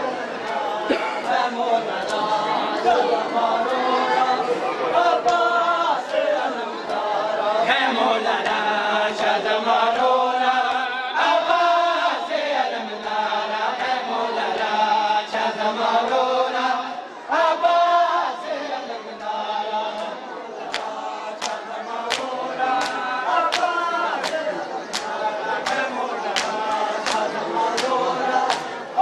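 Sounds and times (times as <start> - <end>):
group chanting: 0.0 - 29.0
chest-beating slaps: 20.0 - 28.7.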